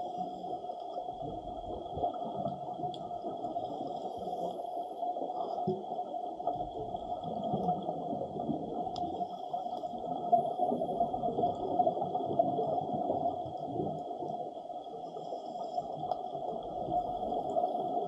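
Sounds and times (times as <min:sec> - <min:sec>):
muffled underwater rush: 0:00.0 - 0:18.0.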